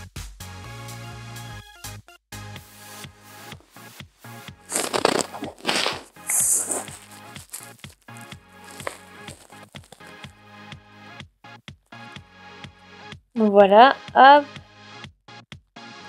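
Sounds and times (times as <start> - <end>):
crunchy rustles of foam clay: 4.7 - 10.3.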